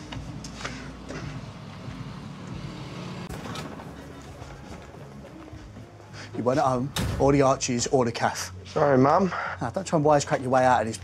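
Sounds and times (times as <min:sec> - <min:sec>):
traffic rumble: 0:00.0 - 0:07.9.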